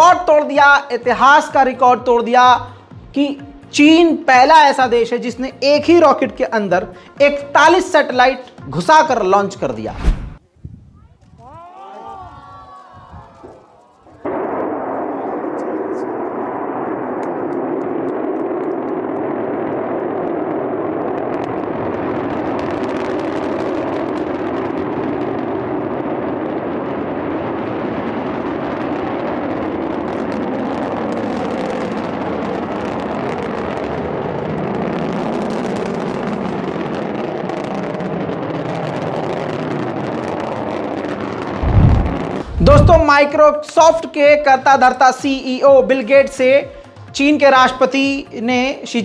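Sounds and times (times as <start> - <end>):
rocket engines rumbling: 12.2 - 43.4
sudden loud sound: 41.6 - 43.2.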